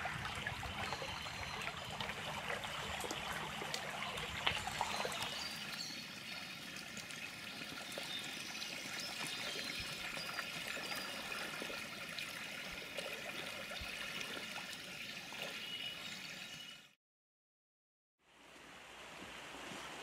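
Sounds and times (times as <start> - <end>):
river running over stones: 0.0 - 13.8.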